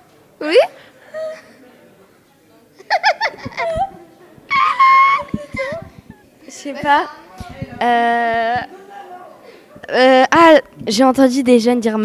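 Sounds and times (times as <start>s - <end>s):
young people laughing: 2.8s - 6.3s.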